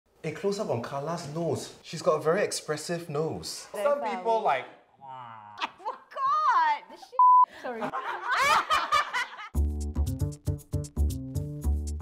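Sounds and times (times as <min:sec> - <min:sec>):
women laughing: 0:05.6 - 0:06.3, 0:07.0 - 0:09.6
music with repeating bass beat: 0:09.6 - 0:12.0.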